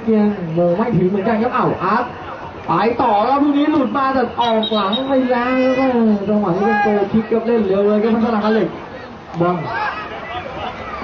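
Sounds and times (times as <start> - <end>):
commentator's long drawn-out call: 3.7 - 7.3.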